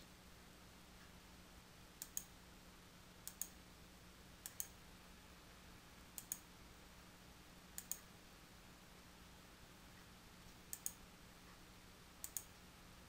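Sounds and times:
faint low hum: 0:00.0 - 0:13.0
mouse button clicks: 0:12.2 - 0:12.5.

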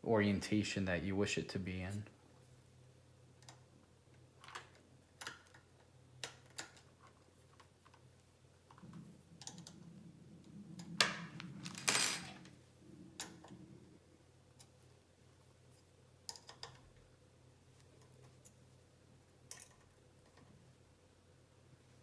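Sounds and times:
rustle of cables and parts: 0:04.4 - 0:12.6.

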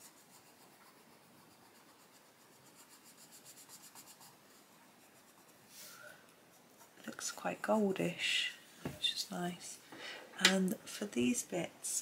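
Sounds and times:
pencil scratching on paper: 0:00.0 - 0:05.8.

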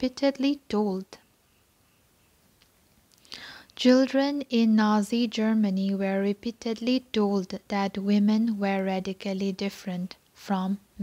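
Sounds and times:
woman speaking: 0:00.0 - 0:01.2, 0:03.8 - 0:11.0
short breath: 0:03.2 - 0:03.8.

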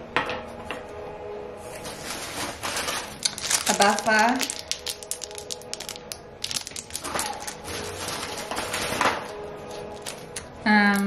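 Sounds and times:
plastic packaging crinkling: 0:01.8 - 0:10.6.

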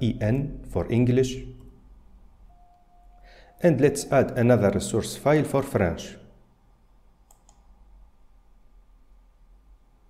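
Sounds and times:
faint computer mouse clicks: 0:07.2 - 0:07.7.

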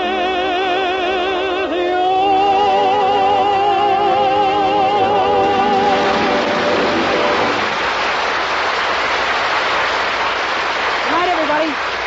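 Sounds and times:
audience applauding: 0:04.8 - 0:12.0.

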